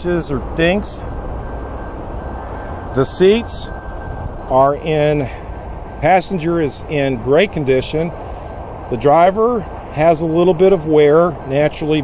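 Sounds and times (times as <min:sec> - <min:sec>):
low rumble: 0:00.0 - 0:09.0
faint steady high tone: 0:00.0 - 0:12.0.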